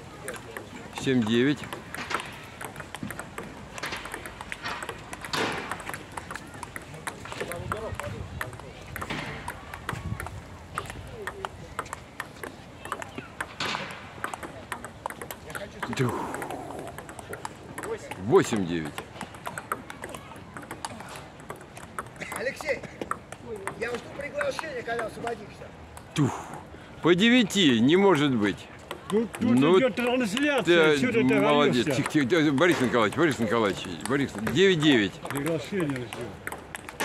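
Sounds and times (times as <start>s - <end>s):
table tennis ball tapping: 0.2s - 26.7s, 27.5s - 37.0s
voices talking: 5.7s - 36.5s.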